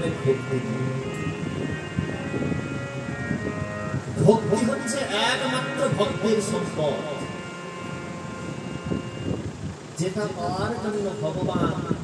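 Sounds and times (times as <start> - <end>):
harmonium chord: 0.0 - 12.0
low background rumble: 0.0 - 12.0.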